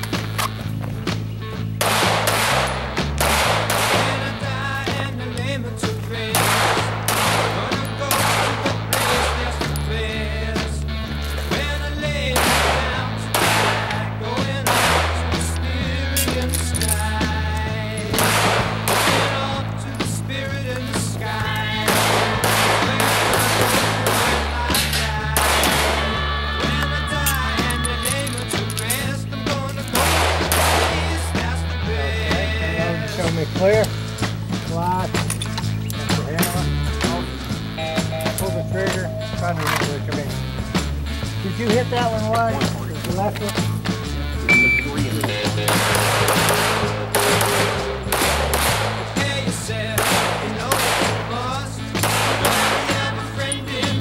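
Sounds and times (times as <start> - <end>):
rock music: 0.0 - 54.0
pistol shots: 1.7 - 4.6, 6.3 - 9.7, 12.3 - 15.6, 18.1 - 19.7, 21.8 - 26.2, 29.9 - 31.5, 45.5 - 53.2.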